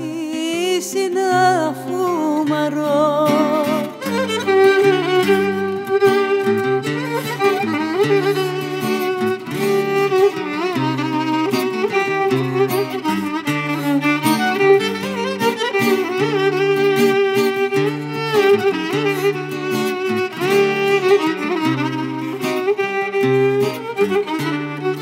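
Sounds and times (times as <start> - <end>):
strummed acoustic guitar: 0.0 - 25.0
violin melody with vibrato: 0.0 - 25.0.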